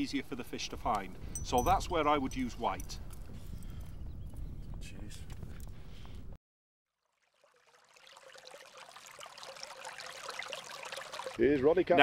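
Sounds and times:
outdoor ambience: 0.0s - 6.4s
water trickling: 6.9s - 11.4s.

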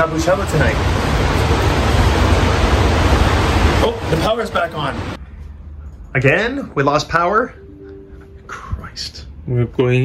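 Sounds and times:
heavy rain: 0.0s - 5.2s.

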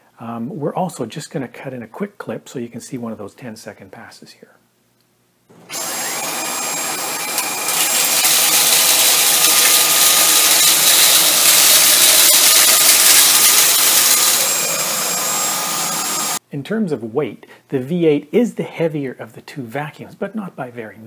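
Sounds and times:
vacuum picking up dry bits: 5.5s - 16.4s
cordless vacuum motor whine: 5.6s - 16.4s.

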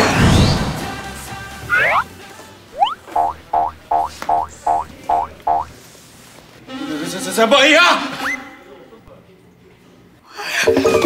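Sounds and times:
comic rising tone: 1.6s - 2.1s, 2.8s - 5.7s.

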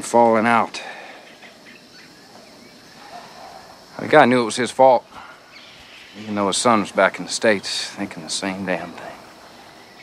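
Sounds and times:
soft hiss: 0.0s - 10.0s
small bird chirps: 1.2s - 4.0s.

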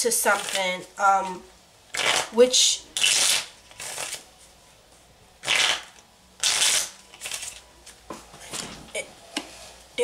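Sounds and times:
cards being shuffled: 3.0s - 4.2s, 5.4s - 8.7s.

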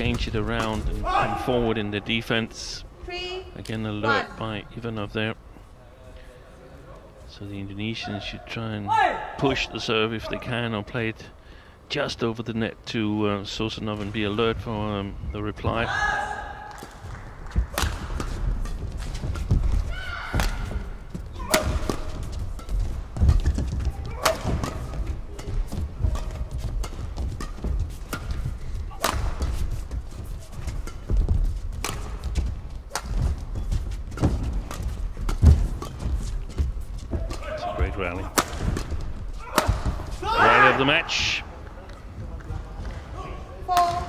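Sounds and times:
rackets striking shuttlecock: 17.7s - 29.7s, 30.6s - 33.5s, 34.1s - 40.2s.

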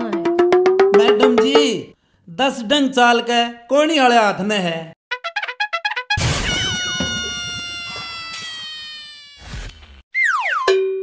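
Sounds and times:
comic descending tone: 6.2s - 9.6s.

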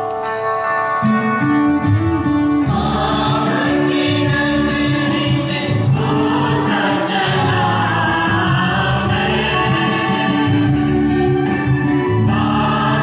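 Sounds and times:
choir singing hymn: 2.6s - 13.0s.

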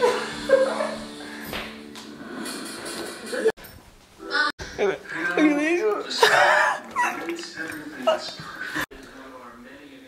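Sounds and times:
television background music: 0.0s - 10.0s.

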